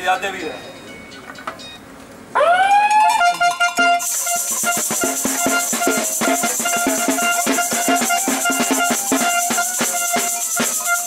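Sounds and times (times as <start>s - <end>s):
siren rising in pitch: 2.4s - 4.7s, 7.9s - 10.8s.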